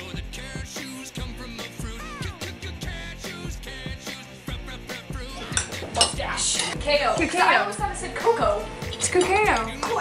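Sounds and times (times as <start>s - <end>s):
background music with steady beat: 0.0s - 10.0s
cutlery and dishes clinking: 5.4s - 6.8s, 8.8s - 10.0s.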